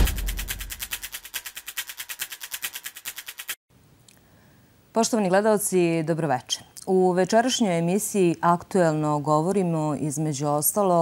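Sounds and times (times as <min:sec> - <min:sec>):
fast ticking rhythm: 0:00.0 - 0:03.6.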